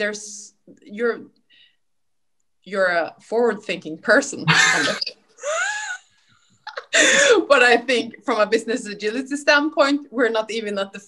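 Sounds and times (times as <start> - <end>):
person laughing: 4.5 - 6.0, 6.7 - 7.5.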